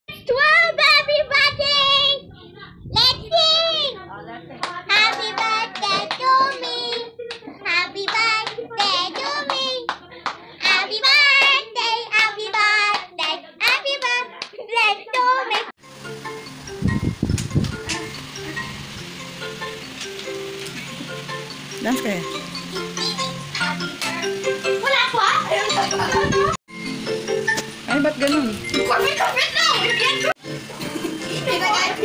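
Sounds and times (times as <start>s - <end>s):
girl singing in a high voice: 0.1s - 10.0s, 10.6s - 15.7s.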